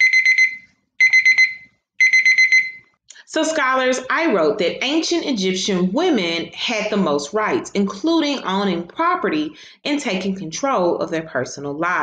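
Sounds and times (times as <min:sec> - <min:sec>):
timer alarm beeping high pips: 0:00.0 - 0:03.0.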